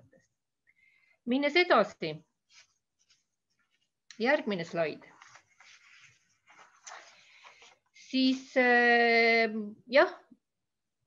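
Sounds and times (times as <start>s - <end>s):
woman speaking: 1.3s - 2.3s, 4.1s - 5.1s, 8.0s - 10.3s.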